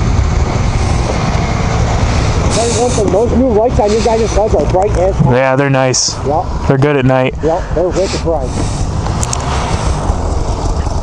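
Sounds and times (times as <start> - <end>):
snowmobile engines rumbling: 0.0 - 11.0.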